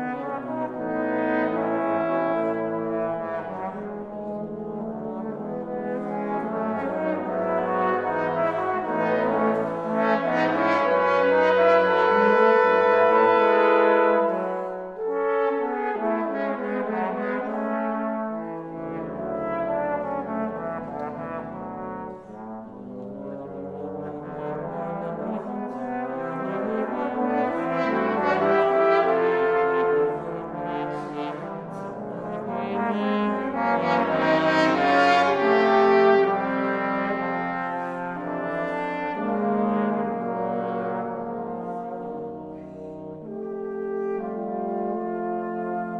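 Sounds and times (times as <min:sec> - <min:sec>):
trombone quartet playing: 0:00.0 - 0:45.9.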